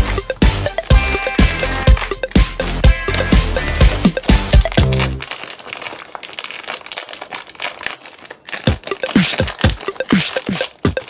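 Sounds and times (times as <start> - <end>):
background music with a beat: 0.0 - 5.2, 8.7 - 11.0
plastic packaging crinkling: 0.7 - 11.0.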